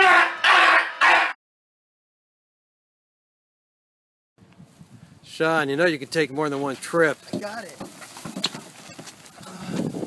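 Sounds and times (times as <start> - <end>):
plastic bags rustling and knocking: 7.1 - 9.9.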